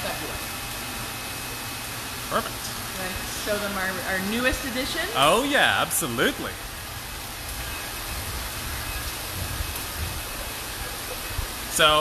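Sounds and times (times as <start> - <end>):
water rushing through tanks: 0.0 - 12.0.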